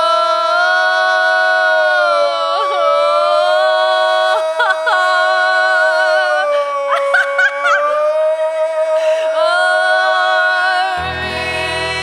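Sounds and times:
woman and man singing in harmony: 0:00.0 - 0:12.0.

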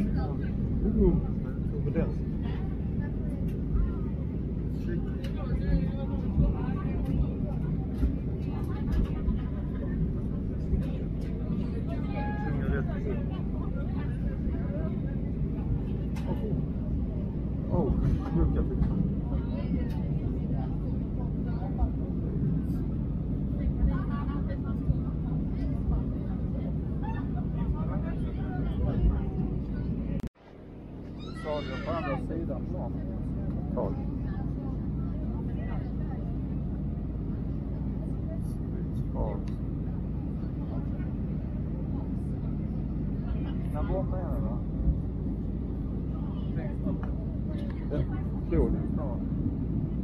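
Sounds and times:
airliner cabin drone: 0:00.0 - 0:50.0
voices talking: 0:31.2 - 0:50.0.

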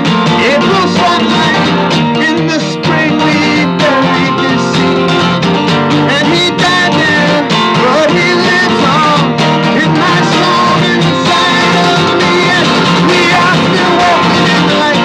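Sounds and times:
acoustic guitar strumming: 0:00.0 - 0:15.0
man singing: 0:00.0 - 0:15.0.

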